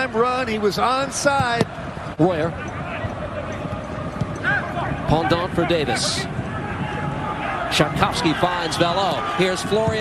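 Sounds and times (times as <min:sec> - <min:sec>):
stadium noise: 0:00.0 - 0:10.0.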